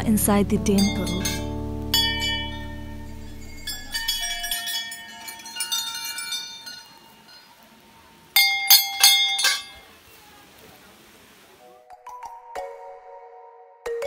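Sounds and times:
brass bells ringing: 0.5 - 7.6, 8.4 - 9.8.

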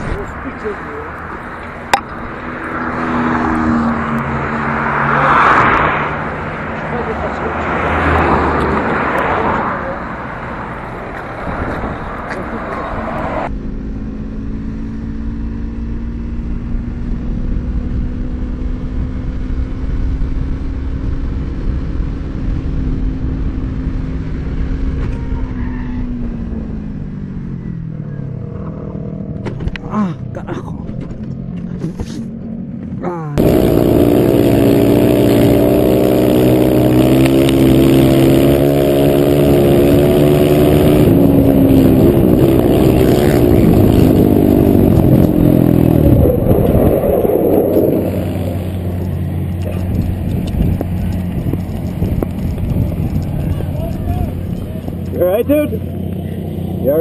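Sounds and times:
motorcycle engine slowing: 0.0 - 8.9, 9.8 - 57.0
quad engine revving: 33.0 - 57.0.

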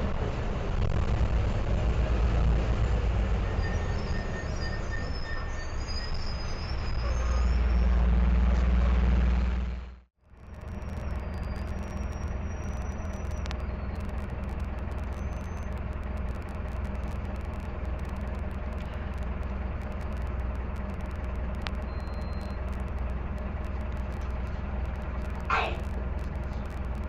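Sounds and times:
bus diesel engine rumbling: 0.0 - 27.0
faint high whistling tones: 3.4 - 8.0, 10.4 - 14.1.

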